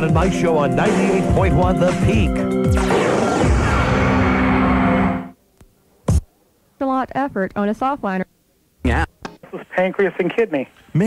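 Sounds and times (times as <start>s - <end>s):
radio jingle music: 0.0s - 5.4s, 9.0s - 11.0s.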